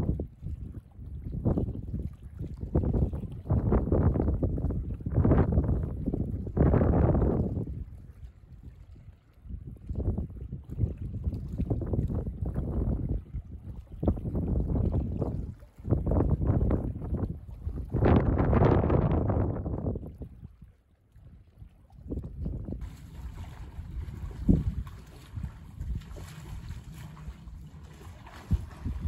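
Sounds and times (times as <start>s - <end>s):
wind buffeting microphone: 0.0s - 20.7s, 21.4s - 29.0s.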